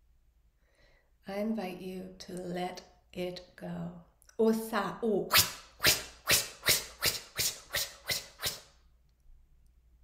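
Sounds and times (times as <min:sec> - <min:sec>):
breathy mouth tsh sounds: 0:05.3 - 0:08.8.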